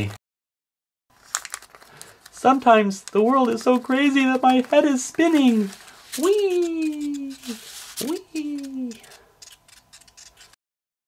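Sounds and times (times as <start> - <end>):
paper model spinning on tabletop: 3.0 - 9.1.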